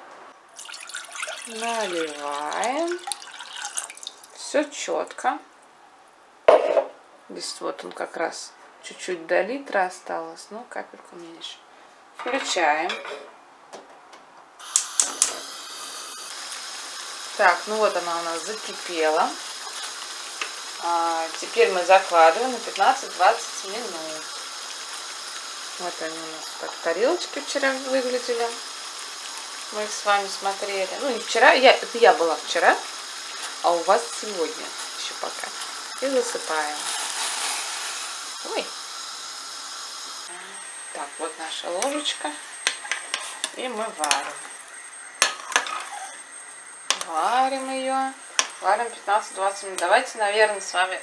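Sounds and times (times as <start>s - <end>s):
water boiling: 0.5s - 5.2s, 14.6s - 51.0s
dry soup mix pouring into water: 0.6s - 4.4s
gas hissing from stove burner: 14.6s - 51.0s
igniter clicks: 46.9s - 47.1s, 48.4s - 48.6s.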